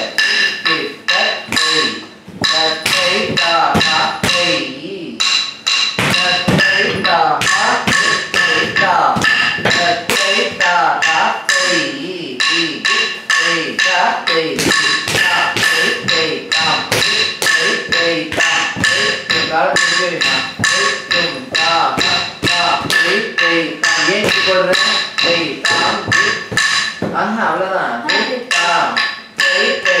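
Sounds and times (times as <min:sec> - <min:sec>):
person chanting syllables: 0:00.0 - 0:05.2, 0:06.1 - 0:30.0.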